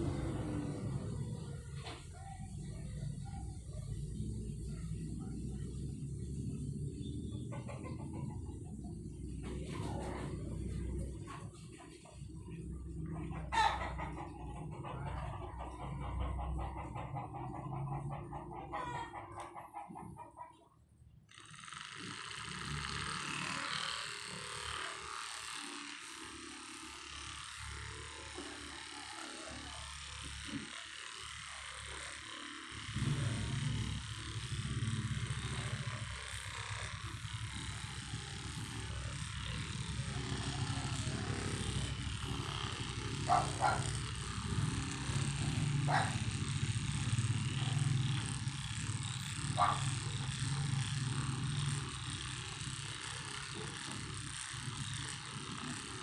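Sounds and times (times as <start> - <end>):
massage gun running: 0.0 - 18.8, 21.0 - 56.0.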